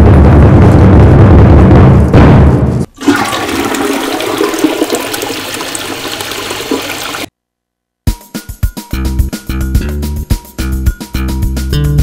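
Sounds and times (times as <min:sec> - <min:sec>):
toilet flushing: 0:02.9 - 0:07.3.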